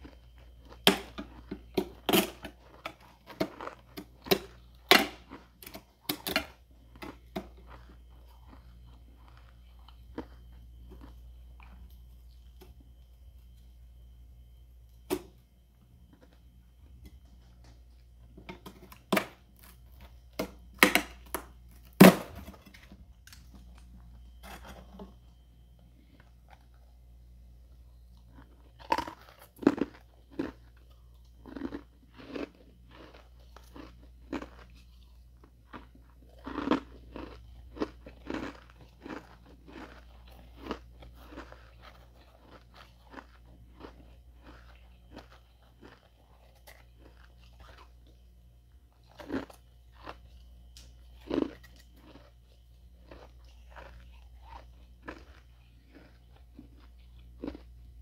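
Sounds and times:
ice being chewed: 0.0 - 58.0.

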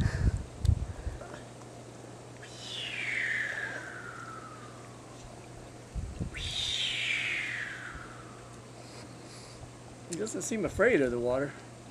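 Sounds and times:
bird singing descending phrases: 2.4 - 5.0, 6.3 - 8.5.

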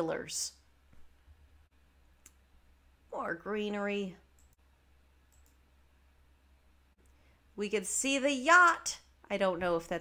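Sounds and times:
computer mouse click: 4.3 - 4.6, 5.3 - 5.6.

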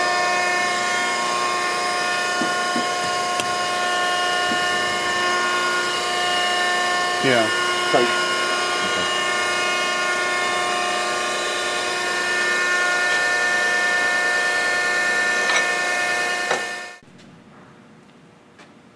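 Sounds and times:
surface grinder whine: 0.0 - 17.0.

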